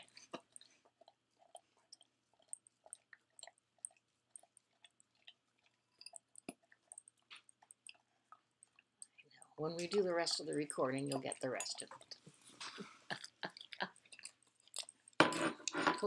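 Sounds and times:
dog licking: 0.0s - 15.2s.

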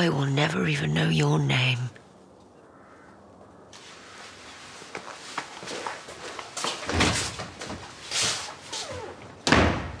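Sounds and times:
soft rustling: 3.7s - 9.2s
door slamming shut: 9.4s - 10.0s.

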